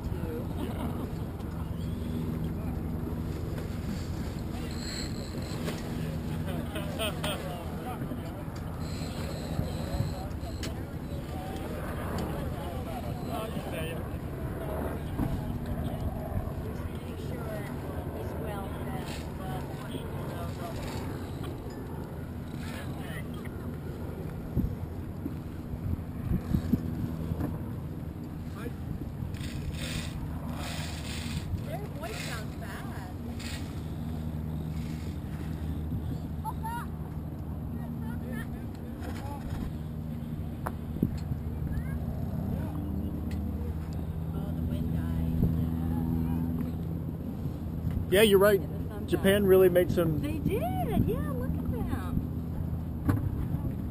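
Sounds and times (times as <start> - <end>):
wind on microphone: 22.5 - 32.6.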